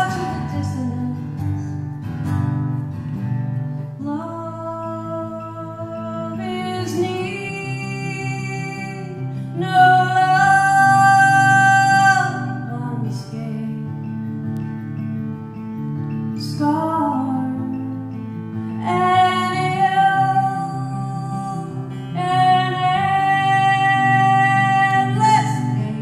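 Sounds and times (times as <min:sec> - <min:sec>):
woman singing long held notes: 0:00.0 - 0:01.6, 0:04.0 - 0:13.8, 0:18.8 - 0:26.0
acoustic guitar: 0:00.0 - 0:26.0.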